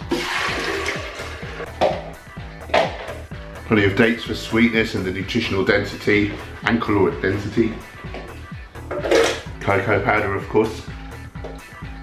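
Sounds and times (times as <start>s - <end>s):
background music: 0.0s - 12.0s
water pouring from plastic bottle: 0.1s - 1.6s.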